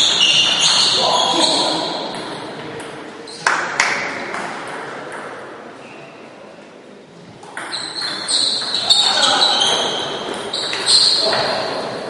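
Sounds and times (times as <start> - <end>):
table tennis ball bouncing: 7.4 - 9.1.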